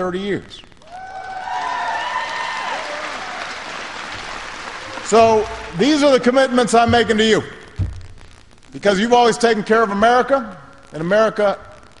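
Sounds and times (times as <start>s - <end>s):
voices cheering: 0.8s - 6.0s
audience applauding: 0.8s - 6.2s.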